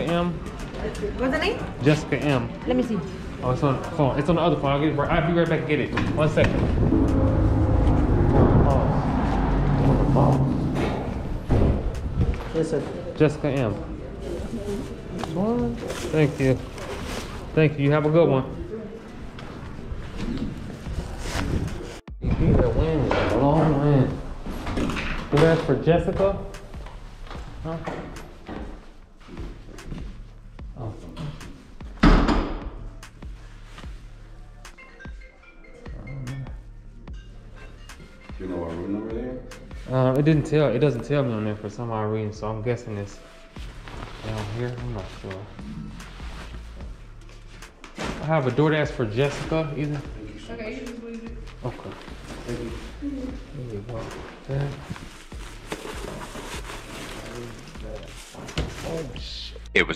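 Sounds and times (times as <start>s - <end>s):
plastic bag rustling: 14.4s - 17.6s, 54.0s - 59.1s.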